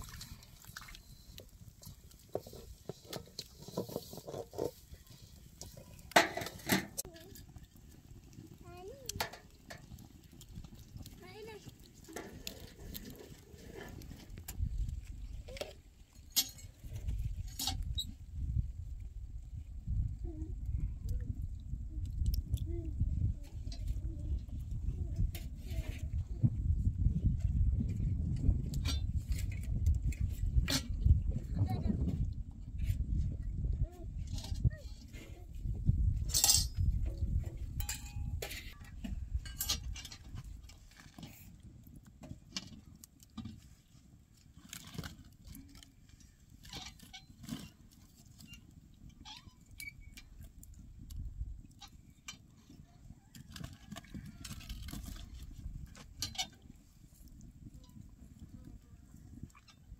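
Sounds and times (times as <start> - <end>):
metal utensils clinking on griddle: 16.3 - 16.7, 36.3 - 36.8, 37.8 - 38.4.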